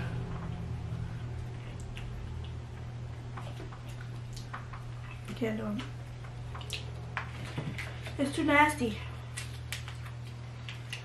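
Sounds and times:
low hum: 0:00.0 - 0:11.0
person chewing: 0:00.1 - 0:05.3, 0:06.2 - 0:08.2, 0:09.2 - 0:11.0.

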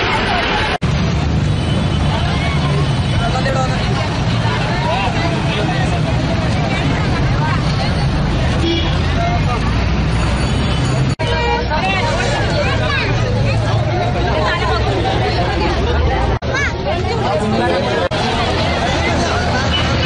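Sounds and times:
many voices talking: 0:00.0 - 0:20.0.

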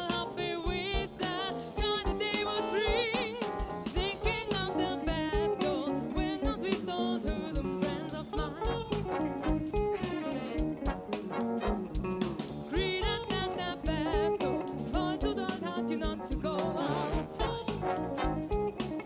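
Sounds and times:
woman singing with vibrato: 0:00.0 - 0:08.9, 0:12.7 - 0:17.8
live band with guitar and drums: 0:00.0 - 0:19.0.

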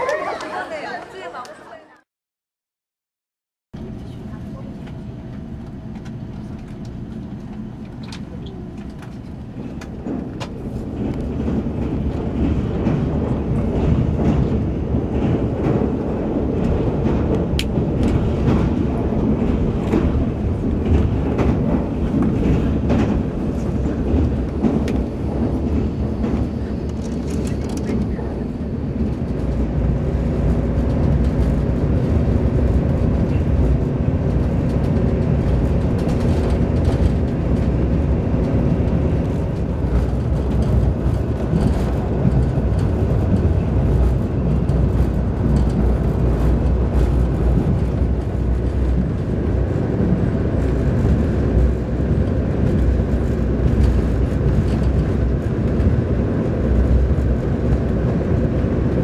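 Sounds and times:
train wheels rumbling on track: 0:03.8 - 0:59.0.

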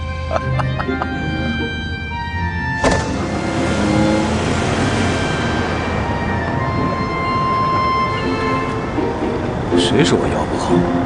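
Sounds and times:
background music: 0:00.0 - 0:11.0
car driving off: 0:00.1 - 0:11.0
thump: 0:02.8 - 0:03.2.

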